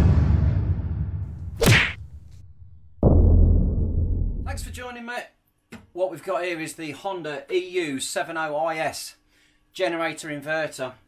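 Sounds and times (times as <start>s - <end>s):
low rumble: 0.0s - 4.8s.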